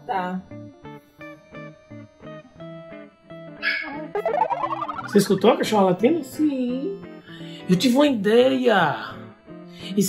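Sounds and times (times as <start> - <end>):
dog barking: 3.6 - 4.0
plucked guitar music: 3.8 - 6.7.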